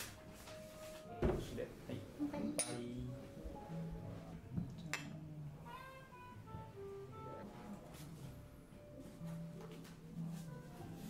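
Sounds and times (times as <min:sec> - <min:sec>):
knock on wooden table: 0:01.2 - 0:01.5.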